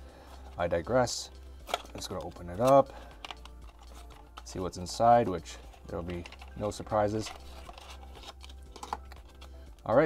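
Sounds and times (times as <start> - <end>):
cardboard box opening: 7.2 - 9.5.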